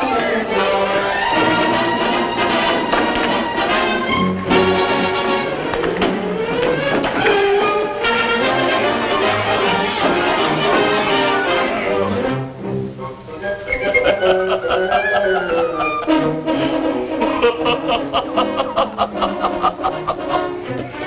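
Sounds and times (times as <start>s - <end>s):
orchestral music led by brass: 0.0s - 21.0s.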